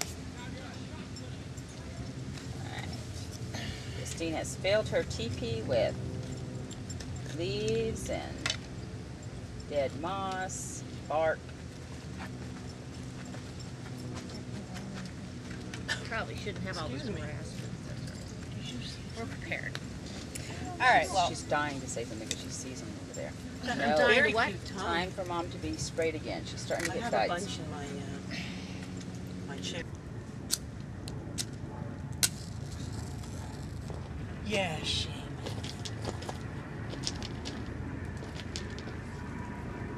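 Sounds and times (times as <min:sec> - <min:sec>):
steady low hum: 0:00.0 - 0:39.9
steady low rumble: 0:22.2 - 0:39.9.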